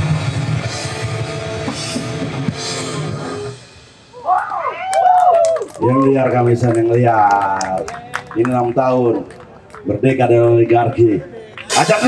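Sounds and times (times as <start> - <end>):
live rock band playing: 0.0 - 4.3
man speaking over pa: 5.8 - 12.0.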